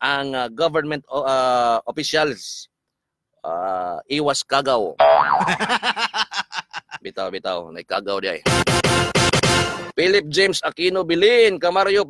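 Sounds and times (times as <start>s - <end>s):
comic boing sound effect: 5.0s - 5.7s.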